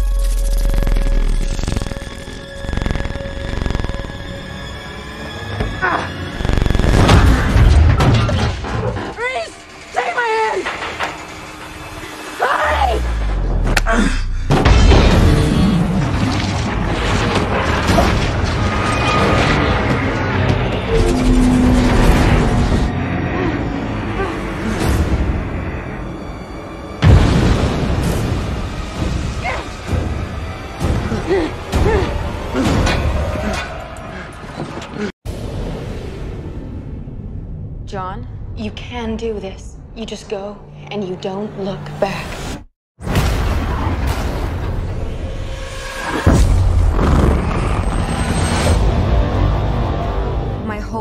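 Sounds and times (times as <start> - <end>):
rumble of action effects: 0.0 - 5.5, 6.1 - 10.0, 10.6 - 50.6
film music: 0.0 - 42.5, 43.7 - 51.0.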